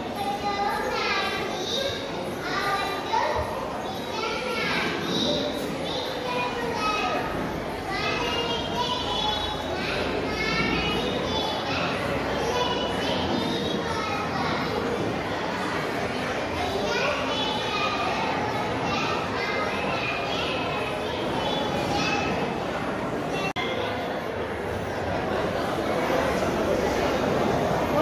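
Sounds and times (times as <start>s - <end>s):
boy reciting over loudspeaker: 0.0s - 23.8s.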